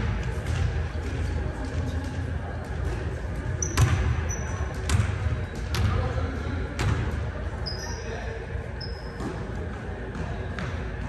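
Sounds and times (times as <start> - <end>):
sneaker squeaks: 3.4 - 6.1, 6.8 - 11.0
basketball bouncing on wood floor: 3.6 - 4.1.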